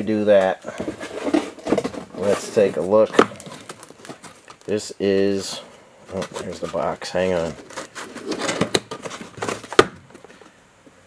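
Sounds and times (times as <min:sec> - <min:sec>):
cardboard box rustling: 0:00.8 - 0:04.7, 0:06.1 - 0:10.3.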